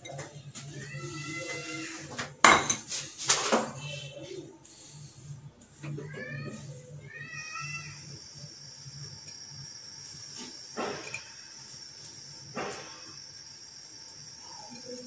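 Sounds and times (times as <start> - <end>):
food frying in hot oil: 7.1 - 15.0.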